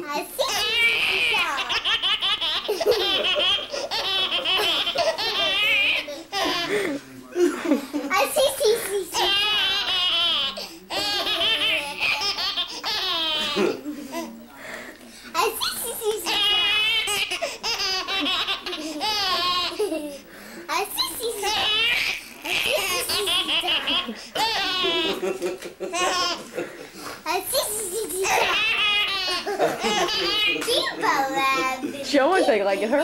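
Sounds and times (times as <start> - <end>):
baby laughing: 0.4 - 7.0, 8.0 - 14.4, 15.4 - 26.6, 27.3 - 32.6.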